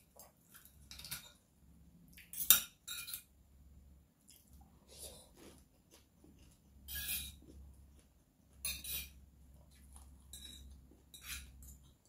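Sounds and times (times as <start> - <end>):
cutlery scraping and clinking on plate: 2.3 - 3.3, 6.8 - 7.6, 8.6 - 9.2, 9.8 - 11.9.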